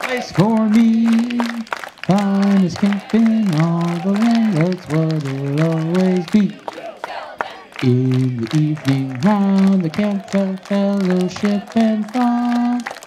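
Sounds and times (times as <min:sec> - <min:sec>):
young voices singing in unison: 0:00.0 - 0:13.0.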